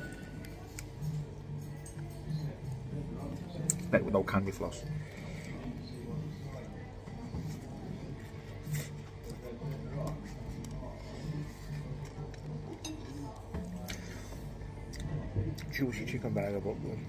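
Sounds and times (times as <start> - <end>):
murmur of diners talking: 0.0 - 17.0.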